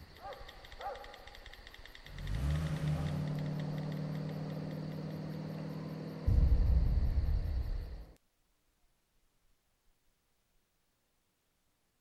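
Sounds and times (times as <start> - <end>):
crickets chirping: 0.0 - 8.2
car engine humming: 0.6 - 8.2.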